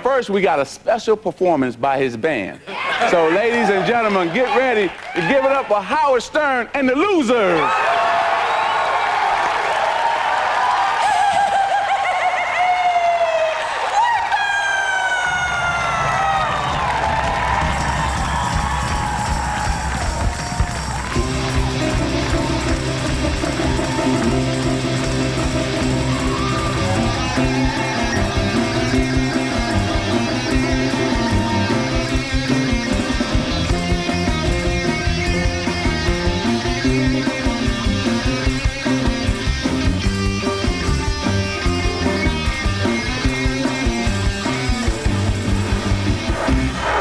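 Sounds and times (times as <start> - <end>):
audience cheering: 2.7 - 6.2, 7.3 - 38.5
live rock band: 16.8 - 47.0
keyboard chords: 17.5 - 47.0
low bass part: 20.2 - 47.0.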